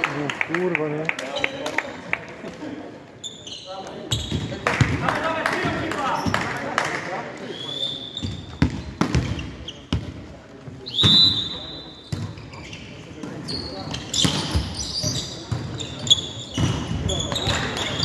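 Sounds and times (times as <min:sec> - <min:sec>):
players' voices echoing: 0:00.0 - 0:18.0
volleyball hits and bounces: 0:08.2 - 0:10.2, 0:14.1 - 0:14.8, 0:16.5 - 0:18.0
loud high whistle: 0:10.9 - 0:12.0.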